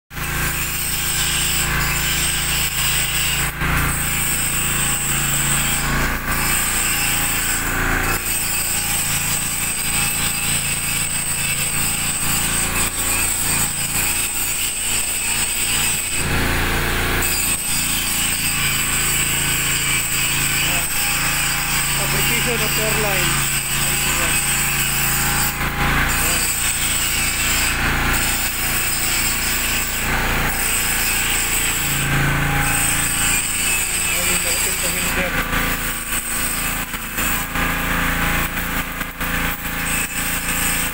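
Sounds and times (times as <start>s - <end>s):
welding arc crackling and hissing: 0.2s - 16.6s, 17.2s - 40.9s.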